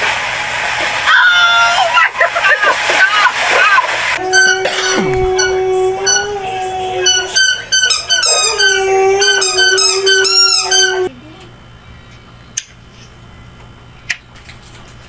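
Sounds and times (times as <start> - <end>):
low held tone: 4.2 - 7.4
dog howling: 4.2 - 11.1.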